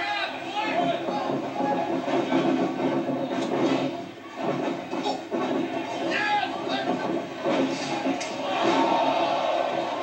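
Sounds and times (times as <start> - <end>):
crowd voices din: 0.0 - 10.0.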